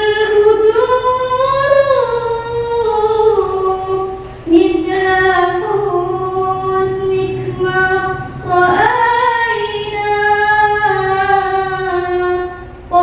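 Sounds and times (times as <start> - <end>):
girl singing into microphone: 0.0 - 13.0.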